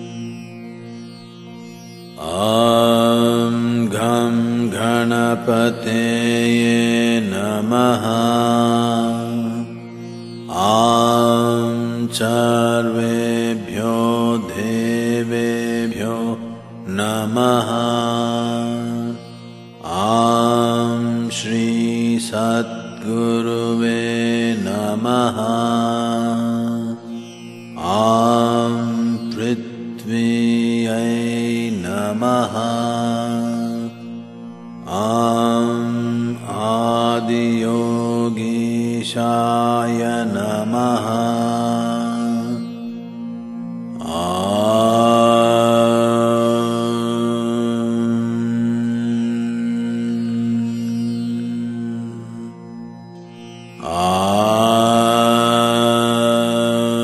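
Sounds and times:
person chanting a mantra: 0:02.2 - 0:34.1, 0:34.8 - 0:42.9, 0:43.8 - 0:52.6, 0:53.7 - 0:57.0.

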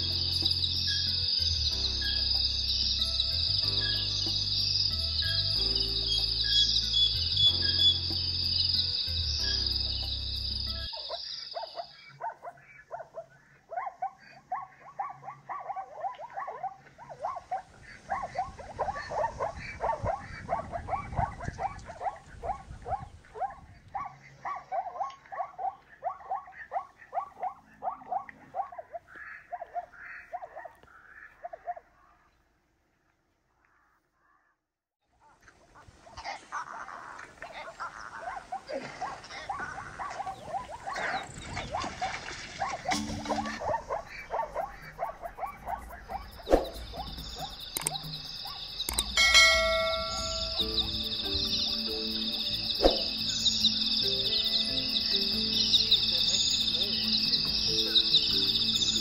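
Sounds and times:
background music: 0:00.0 - 0:11.0, 0:42.9 - 0:59.0
zebras barking: 0:10.7 - 0:32.2, 0:37.5 - 0:59.0.

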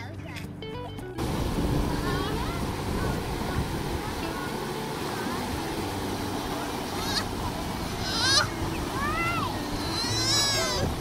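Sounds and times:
creek water over rocks: 0:01.2 - 0:11.0
child squealing: 0:07.0 - 0:07.3, 0:08.0 - 0:10.9.

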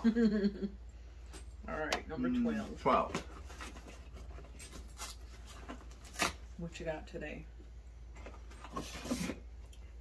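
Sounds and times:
low steady hum: 0:00.0 - 0:10.0
cardboard box rustling and scraping: 0:08.4 - 0:09.5.

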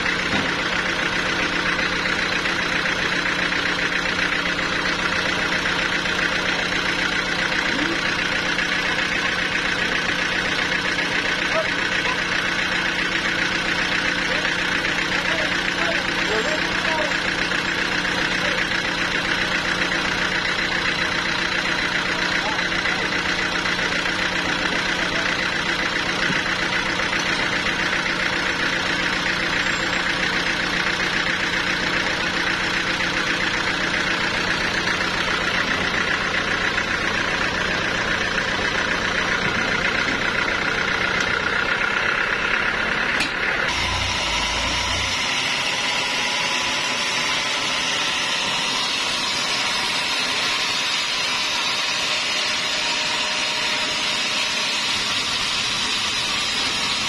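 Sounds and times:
sawmill engine idling: 0:00.0 - 0:57.0
hissy machine with rising whine: 0:43.7 - 0:57.0.

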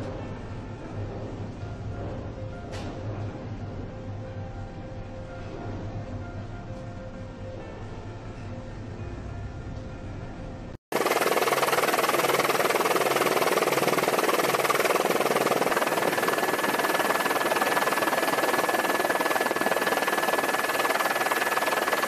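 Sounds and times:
loud steady rushing noise: 0:10.9 - 0:22.0
thin high whine: 0:11.0 - 0:22.0.

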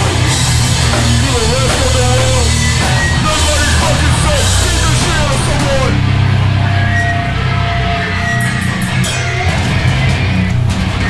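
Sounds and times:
bass guitar: 0:00.0 - 0:11.0
distorted electric guitar: 0:00.0 - 0:11.0.

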